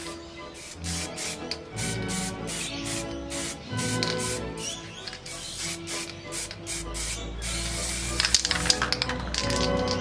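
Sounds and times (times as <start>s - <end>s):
background music: 0.0s - 10.0s
spray paint can hissing: 0.6s - 10.0s.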